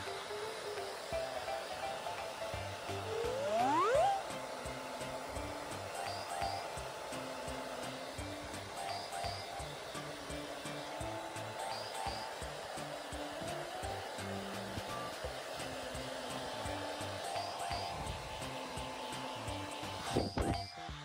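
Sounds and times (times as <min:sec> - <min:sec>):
background music: 0:00.0 - 0:21.0
hair dryer blowing: 0:00.0 - 0:21.0.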